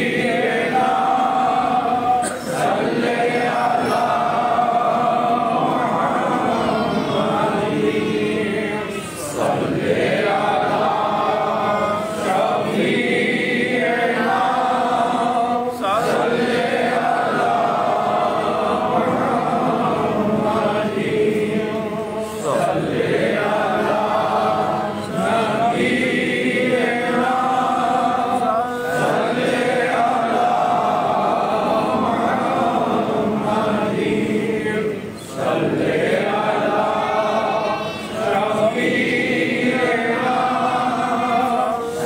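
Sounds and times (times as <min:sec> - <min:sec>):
group of voices chanting: 0:00.0 - 0:42.0.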